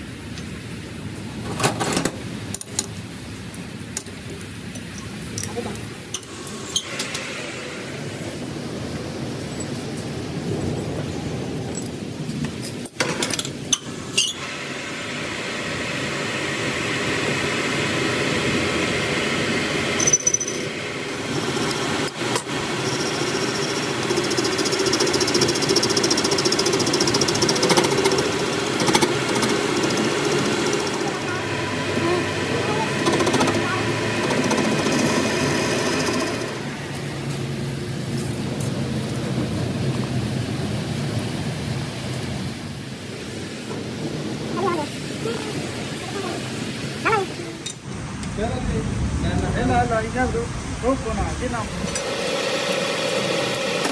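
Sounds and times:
gear whine: 0:12.8 - 0:40.9
metal lathe cutting: 0:13.8 - 0:37.4, 0:51.7 - 0:53.9.

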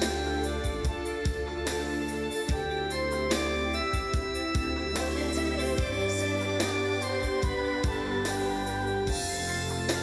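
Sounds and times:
organ keyboard chords: 0:00.0 - 0:10.0
sustained bass notes: 0:00.0 - 0:10.0
kick drum beats: 0:00.7 - 0:01.6, 0:02.5 - 0:02.8, 0:04.0 - 0:04.9, 0:07.2 - 0:08.2.

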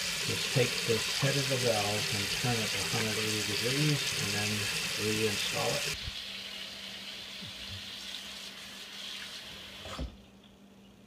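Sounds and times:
faucet water running into sink: 0:00.0 - 0:10.0.

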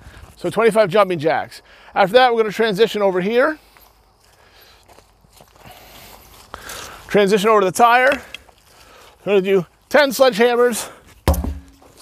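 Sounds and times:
footsteps on grass and gravel: 0:00.0 - 0:12.0.

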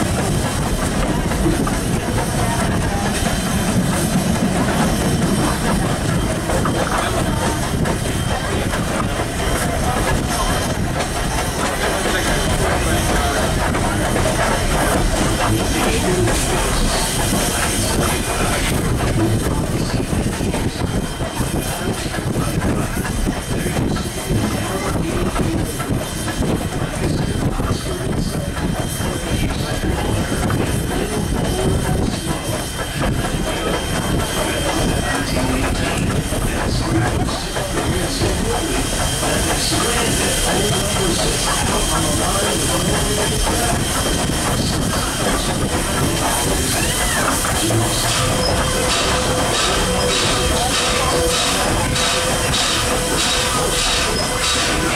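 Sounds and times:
steam locomotive running: 0:00.0 - 0:54.9
wheels rattling on rail joints: 0:00.0 - 0:54.9.

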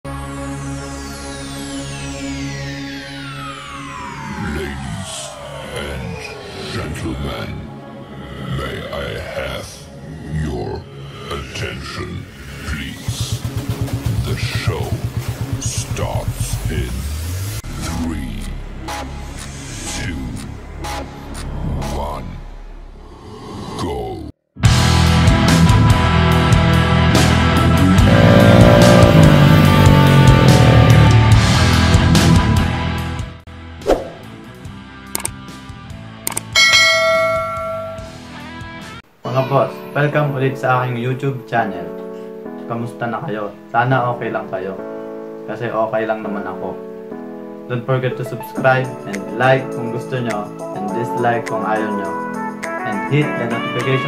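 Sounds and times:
mouse clicks: 0:35.2 - 0:35.4, 0:36.3 - 0:36.5
bright bell ding: 0:36.6 - 0:38.4
faint background music: 0:39.1 - 0:54.0.

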